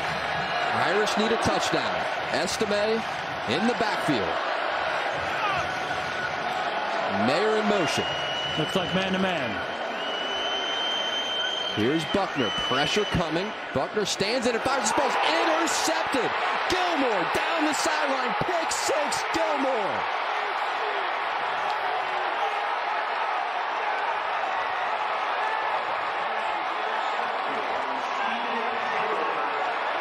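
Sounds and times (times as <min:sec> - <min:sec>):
stadium crowd noise: 0:00.0 - 0:30.0
commentator's excited shout: 0:11.9 - 0:20.1.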